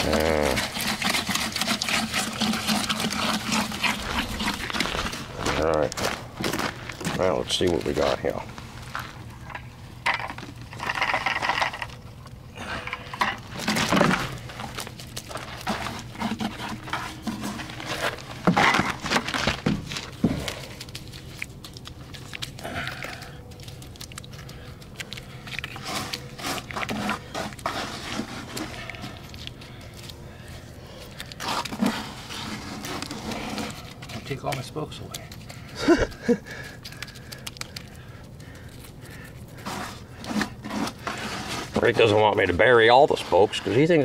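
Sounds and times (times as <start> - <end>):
wet cement poured from bucket: 0.0 - 5.6, 25.5 - 30.1, 31.2 - 34.7, 39.5 - 44.0
wet scrapes and slaps by hand: 0.0 - 5.7, 13.6 - 30.2, 30.9 - 44.0.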